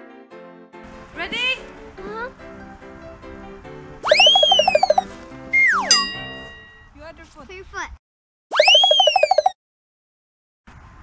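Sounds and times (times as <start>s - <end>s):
light background music: 0.8s - 6.1s
whistle sliding down in pitch: 4.0s - 6.8s, 8.5s - 9.6s
warbling cartoon boing: 4.1s - 5.0s, 5.6s - 6.7s, 8.6s - 9.6s
ringing ding: 5.6s - 6.9s.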